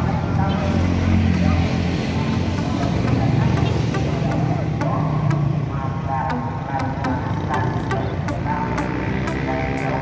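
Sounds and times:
road traffic: 0:00.0 - 0:10.0
music with regular beat: 0:02.2 - 0:05.7, 0:06.3 - 0:10.0.

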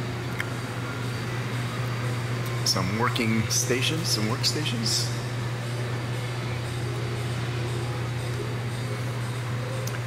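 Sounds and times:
air conditioning hum: 0:00.0 - 0:10.0.

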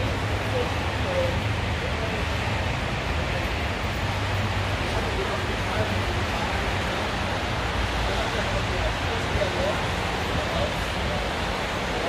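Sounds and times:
faint voices: 0:00.0 - 0:12.0
rain on wet pavement: 0:00.0 - 0:12.0.

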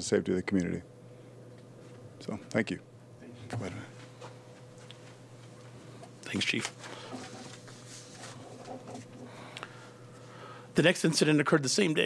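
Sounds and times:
paper sheets rustling: 0:06.5 - 0:09.2.

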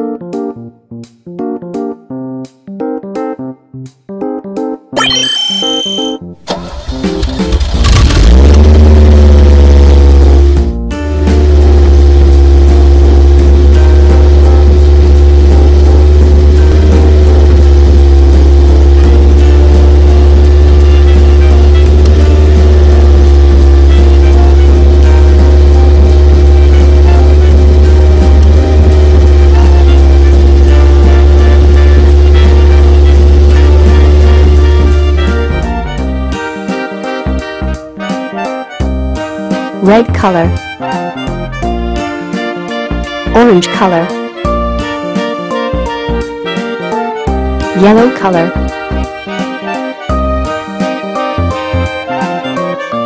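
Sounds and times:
heavy low engine drone: 0:06.6 - 0:36.7.

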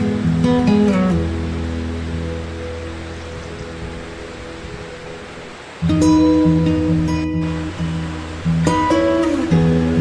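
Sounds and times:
acoustic guitar chord strummed: 0:00.0 - 0:05.1, 0:05.8 - 0:10.0
steady hiss of water: 0:00.0 - 0:10.0.

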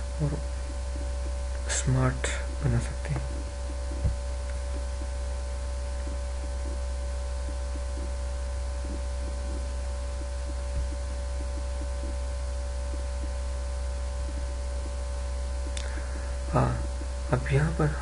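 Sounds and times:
electrical hum: 0:00.0 - 0:18.0
soft low thump: 0:02.6 - 0:05.2.

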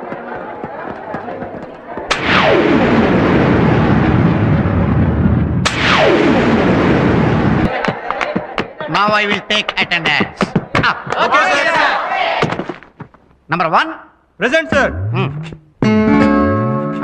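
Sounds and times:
loud sudden booms: 0:02.1 - 0:07.7.

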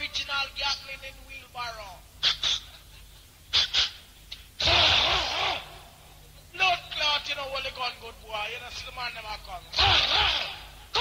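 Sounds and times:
vocal hissing bursts: 0:03.5 - 0:05.8.

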